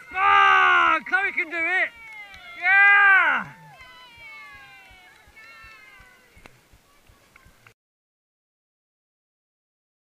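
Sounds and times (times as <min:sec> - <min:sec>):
person shouting yeah: 0:00.0 - 0:06.3
faint long cheer: 0:00.0 - 0:07.3.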